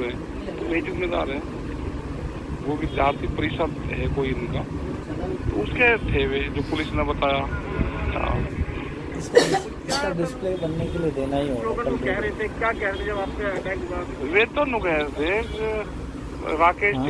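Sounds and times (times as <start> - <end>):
low outdoor rumble: 0.0 - 17.0
crowd talking: 2.6 - 17.0.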